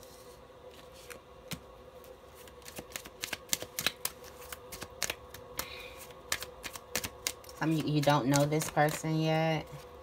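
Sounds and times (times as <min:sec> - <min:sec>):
deck of cards shuffling: 0:00.0 - 0:01.6, 0:02.3 - 0:10.0.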